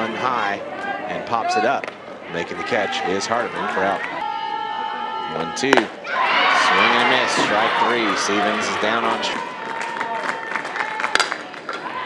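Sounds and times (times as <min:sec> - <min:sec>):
ballpark crowd noise: 0:00.0 - 0:12.0
bat cracking ball: 0:05.7 - 0:05.9
scattered clapping: 0:09.4 - 0:12.0.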